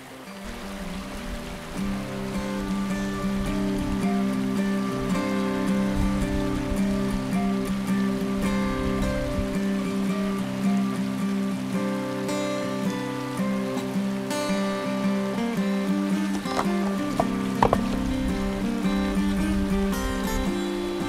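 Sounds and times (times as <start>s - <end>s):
shallow creek rushing: 0.0s - 21.0s
background music of held notes: 0.4s - 21.0s.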